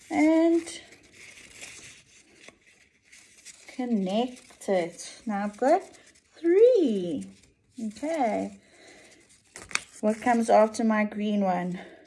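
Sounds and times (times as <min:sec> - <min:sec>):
paper strips rustling and crinkling: 0:00.0 - 0:10.9.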